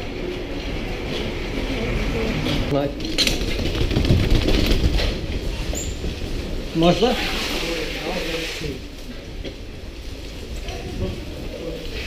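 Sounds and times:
bicycle rattling and knocking: 0:02.7 - 0:06.4.

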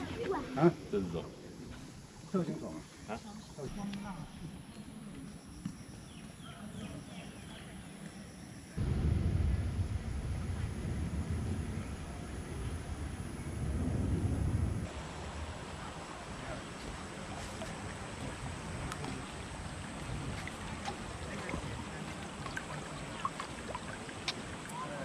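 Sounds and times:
wind buffeting microphone: 0:08.8 - 0:15.8
creek flowing over rocks: 0:14.9 - 0:25.0.

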